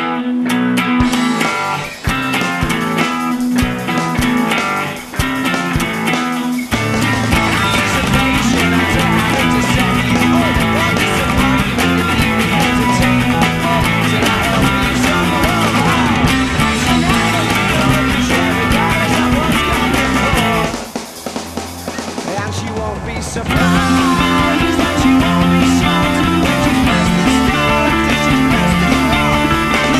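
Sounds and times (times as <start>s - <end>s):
electric guitar strummed rapidly: 0.0s - 29.9s
fast rock song: 0.0s - 29.9s.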